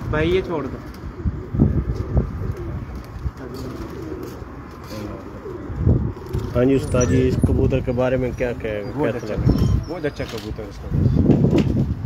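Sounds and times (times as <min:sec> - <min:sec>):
pigeons cooing: 0:00.2 - 0:11.3.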